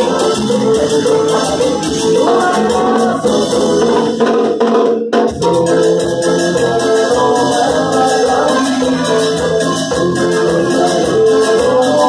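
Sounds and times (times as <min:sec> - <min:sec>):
live band playing cumbia: 0:00.0 - 0:12.0
shaker and drum beat: 0:00.0 - 0:12.0.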